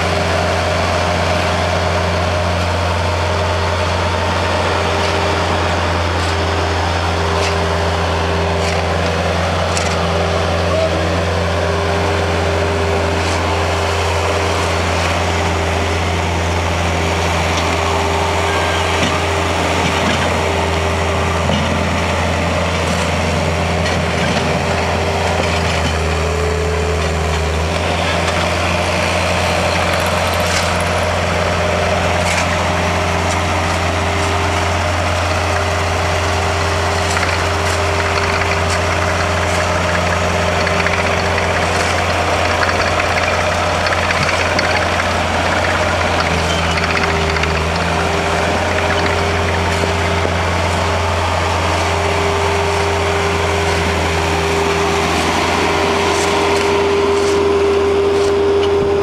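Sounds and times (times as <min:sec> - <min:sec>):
diesel engines idling: 0:00.0 - 0:59.0
shovels scraping ice: 0:29.7 - 0:31.0, 0:36.2 - 0:50.8, 0:55.9 - 0:58.5.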